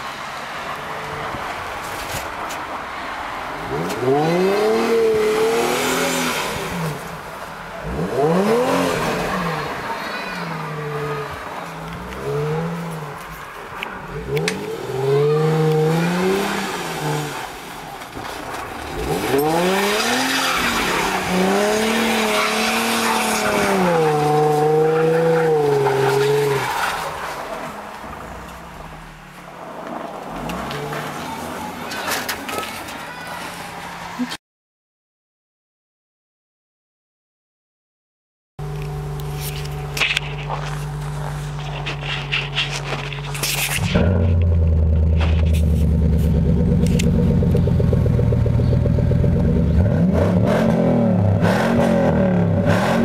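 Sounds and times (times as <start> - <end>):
car engine revving: 3.6 - 31.4, 38.6 - 53.0
tyres spinning on snow: 3.7 - 33.0, 38.6 - 50.0.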